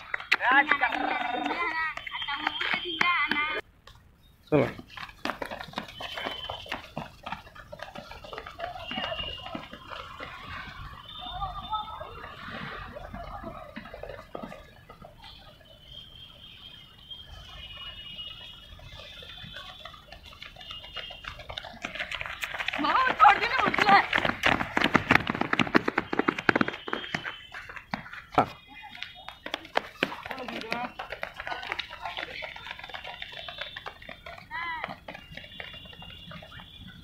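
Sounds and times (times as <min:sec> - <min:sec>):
rapid footsteps on concrete: 0:00.0 - 0:03.6, 0:04.7 - 0:15.8, 0:17.6 - 0:37.0.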